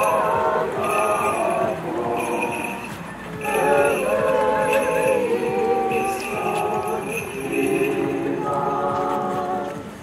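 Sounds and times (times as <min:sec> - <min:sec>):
group singing chant: 0:00.0 - 0:09.9.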